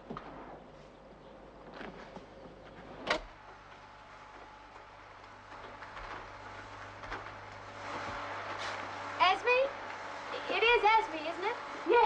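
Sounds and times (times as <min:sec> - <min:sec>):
vacuum cleaner running: 0:03.4 - 0:12.0.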